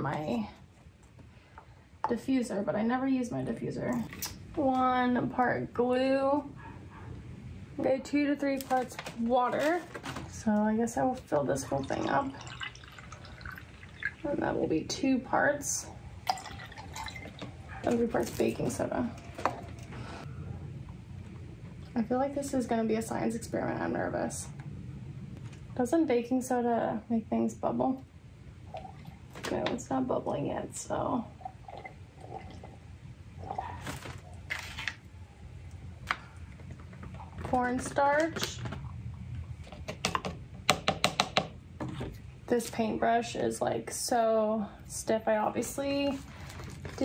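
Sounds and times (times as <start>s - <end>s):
faint low room hum: 0.0s - 47.0s.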